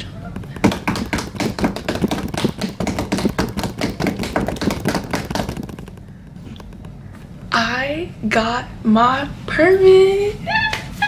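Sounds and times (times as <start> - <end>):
drum roll of rapid taps: 0.4 - 7.9.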